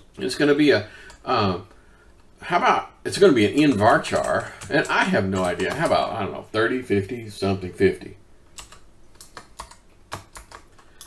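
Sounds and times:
computer keyboard typing: 3.4 - 6.2, 8.5 - 11.0.

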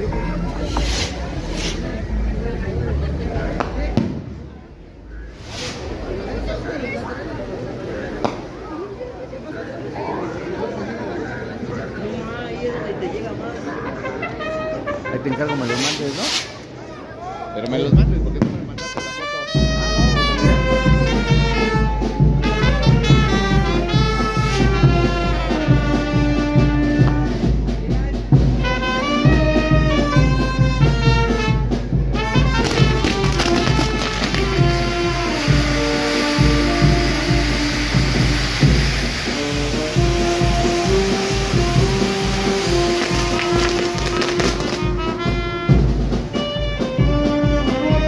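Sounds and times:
fireworks spraying hiss: 0.0 - 2.4, 3.5 - 9.5, 15.5 - 16.8, 18.4 - 27.6, 32.2 - 46.4
brass band music: 0.0 - 4.4, 14.0 - 16.7, 17.9 - 48.0
steady drum beat: 17.9 - 48.0.

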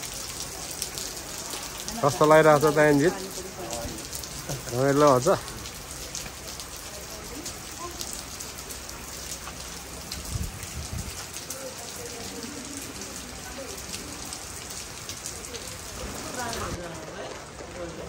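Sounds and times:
rain pattering: 0.0 - 18.0
faint voices: 1.1 - 10.2, 10.8 - 18.0.

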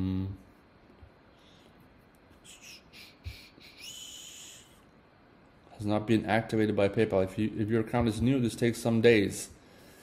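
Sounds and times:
man's soft breaths: 9.6 - 10.0.

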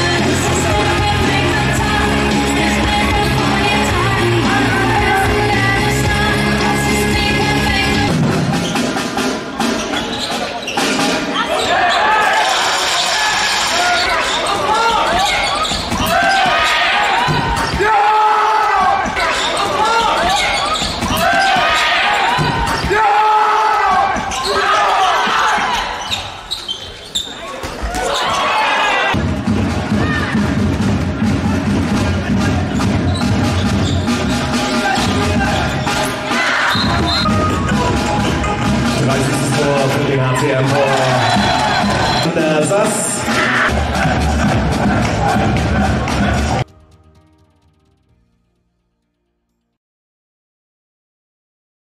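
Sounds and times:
background music: 0.0 - 11.5, 29.2 - 49.8
players shouting: 10.2 - 29.2, 29.8 - 46.7.

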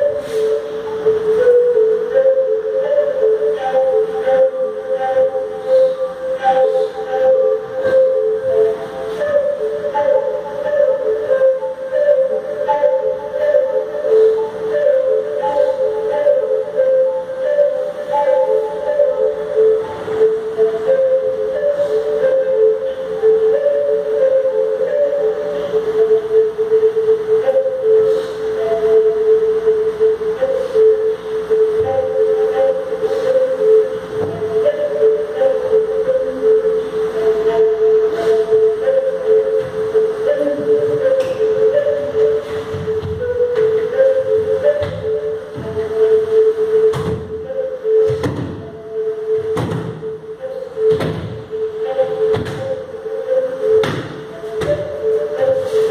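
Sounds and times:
wind instrument slow melody: 0.0 - 55.9.

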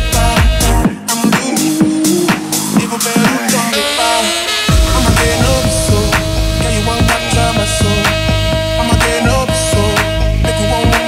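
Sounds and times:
club dance music: 0.8 - 9.2
steady kick-drum beat: 4.7 - 9.3
held synth note: 4.7 - 9.6
sharp hit: 4.7 - 10.1.

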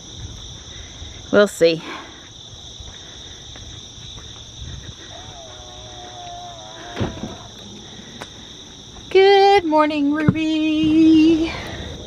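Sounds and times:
night insects trilling: 0.0 - 12.0
thump: 6.8 - 7.5.

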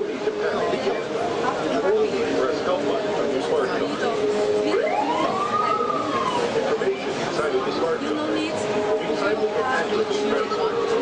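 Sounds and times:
people talking in echoing hall: 0.0 - 11.0
siren-like sweeping tone: 2.2 - 11.0.

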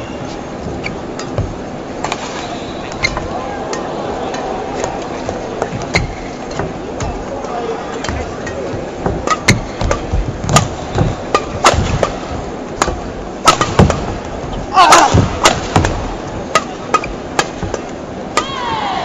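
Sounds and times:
rackets hitting shuttlecock: 1.0 - 14.1, 14.8 - 18.8
indistinct voices murmuring: 2.1 - 9.1.

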